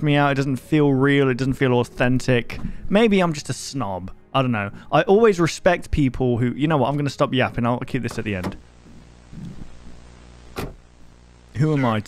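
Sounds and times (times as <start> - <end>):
man speaking: 0.0 - 8.6, 11.5 - 12.0
steady low hum: 8.0 - 12.0
soft murmur: 8.9 - 10.0.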